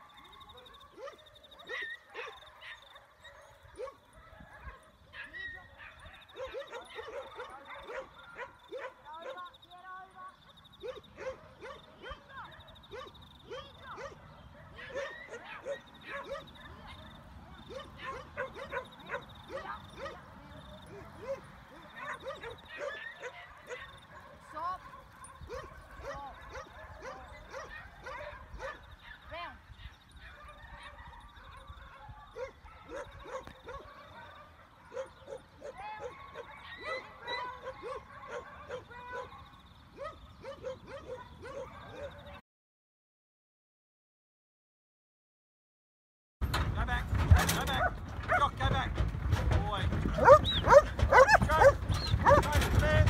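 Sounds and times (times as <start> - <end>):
dogs yapping: 0.0 - 9.5, 10.8 - 42.4, 47.3 - 53.0.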